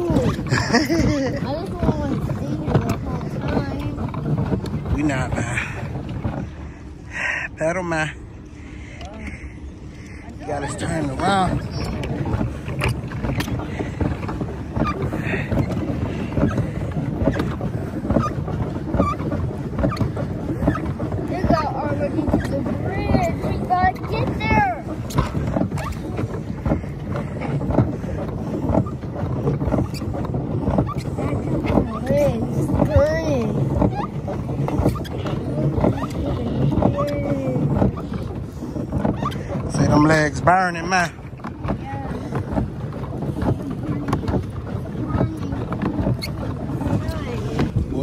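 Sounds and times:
paddle wheel churning water: 0.0s - 48.0s
wind on microphone: 9.8s - 48.0s.

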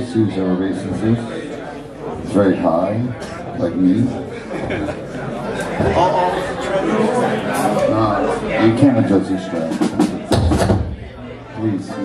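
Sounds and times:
men talking: 0.0s - 10.3s, 11.2s - 12.0s.

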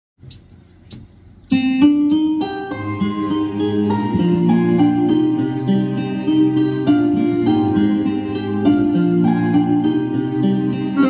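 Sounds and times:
instrumental backing track: 0.2s - 11.0s.

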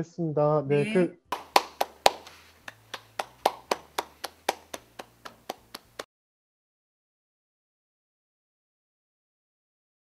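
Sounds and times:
people clapping: 1.3s - 6.1s.

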